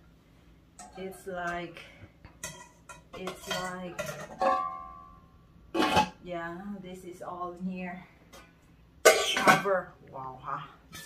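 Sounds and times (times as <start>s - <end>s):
cookware clattering: 2.3s - 5.2s, 5.8s - 6.2s, 9.1s - 9.8s
pans knocking together: 2.4s - 4.9s.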